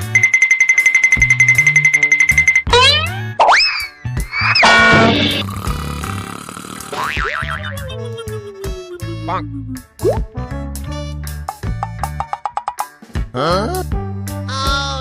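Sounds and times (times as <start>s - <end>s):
cartoon rattling trill: 0.0s - 5.4s
background music: 0.0s - 15.0s
whistle sliding down in pitch: 2.7s - 5.2s
boing whistles: 2.7s - 5.4s.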